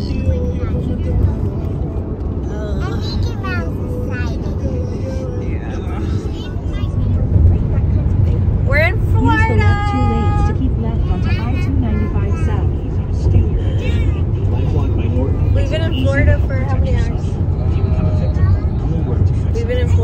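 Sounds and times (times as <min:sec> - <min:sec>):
car road rumble: 0:00.0 - 0:20.0
voices talking: 0:00.0 - 0:20.0.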